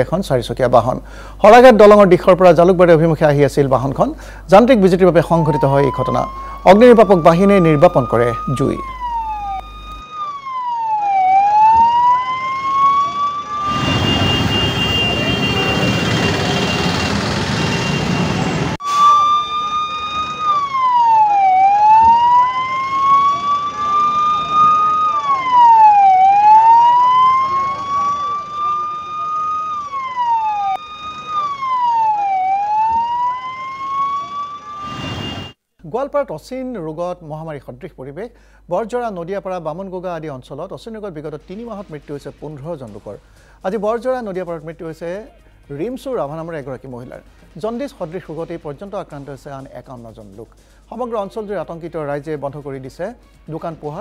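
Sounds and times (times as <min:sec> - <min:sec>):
siren: 0:05.0 - 0:35.6.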